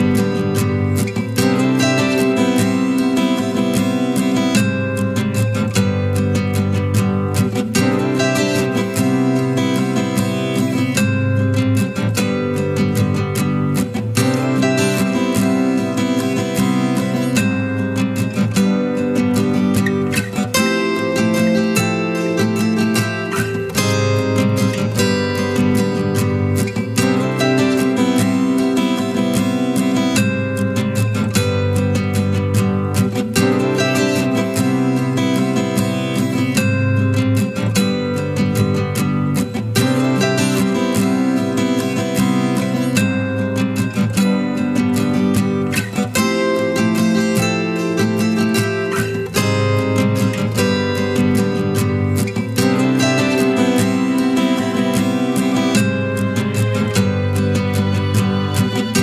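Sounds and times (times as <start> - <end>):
strummed acoustic guitar music: 0.0 - 59.0.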